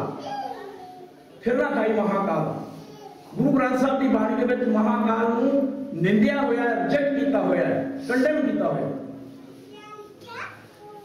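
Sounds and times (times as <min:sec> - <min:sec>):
faint voices in a hall: 0:00.0 - 0:11.0.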